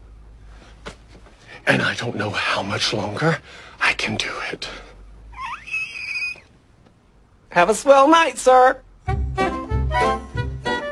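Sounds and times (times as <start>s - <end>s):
high-pitched squeak: 5.4s - 6.5s.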